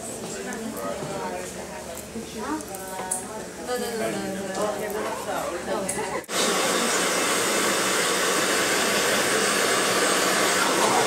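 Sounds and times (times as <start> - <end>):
hair dryer running: 6.2 - 11.0.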